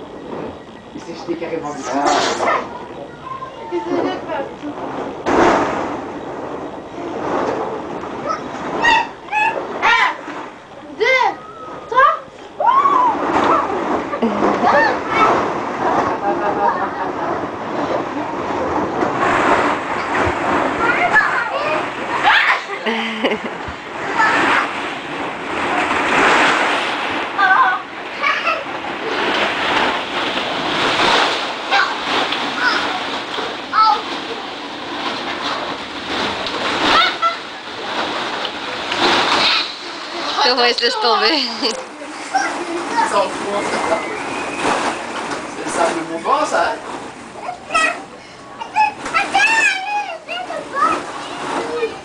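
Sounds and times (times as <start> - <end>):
child calling: 8.2 - 10.2, 36.8 - 37.5.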